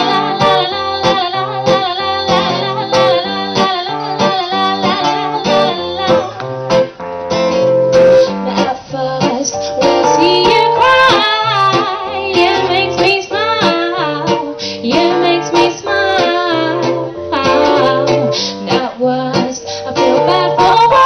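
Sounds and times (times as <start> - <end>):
woman singing into a microphone: 0.0 - 6.9, 8.2 - 21.0
guitar: 0.0 - 21.0.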